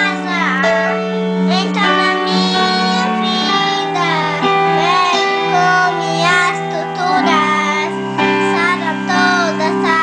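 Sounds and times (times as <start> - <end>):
backing track of sustained chords: 0.0 - 10.0
boy singing: 0.0 - 10.0.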